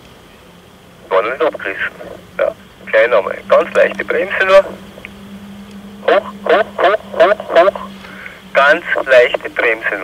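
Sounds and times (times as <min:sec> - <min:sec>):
low radio hum: 0:00.0 - 0:10.0
man calling over two-way radio: 0:01.0 - 0:05.0, 0:06.0 - 0:07.9, 0:08.5 - 0:10.0.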